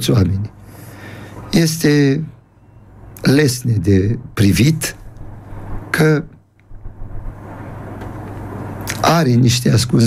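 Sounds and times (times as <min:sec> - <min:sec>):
low constant hum: 0:00.0 - 0:10.0.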